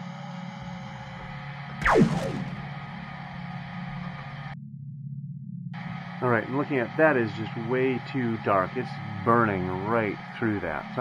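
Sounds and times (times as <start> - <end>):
quick falling whine: 1.8 - 4.2.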